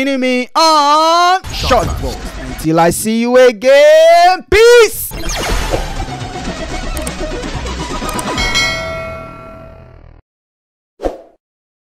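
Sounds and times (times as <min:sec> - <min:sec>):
glitchy sound effects: 0:01.4 - 0:02.7, 0:05.1 - 0:08.4
music: 0:01.4 - 0:03.1, 0:05.1 - 0:10.2
bell-like clang: 0:08.2 - 0:10.0.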